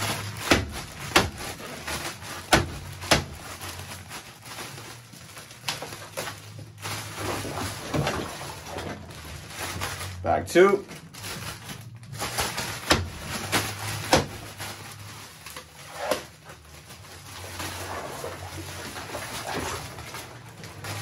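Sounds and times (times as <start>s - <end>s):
bag of ice knocking and rustling: 0.0s - 21.0s.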